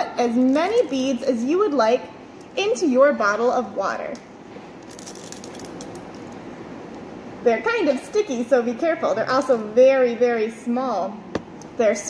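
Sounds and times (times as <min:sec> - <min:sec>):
low room noise: 0:00.0 - 0:12.0
water beads ticking in plastic bottle: 0:04.8 - 0:06.4.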